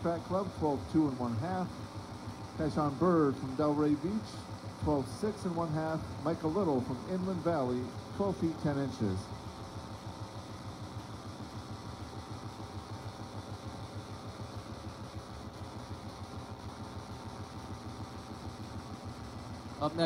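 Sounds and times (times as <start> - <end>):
low background rumble and hum: 0.0 - 20.0.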